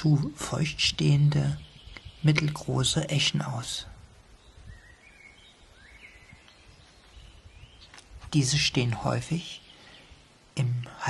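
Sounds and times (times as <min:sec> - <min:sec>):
birdsong whistled notes: 0:01.1 - 0:02.7, 0:04.3 - 0:08.0.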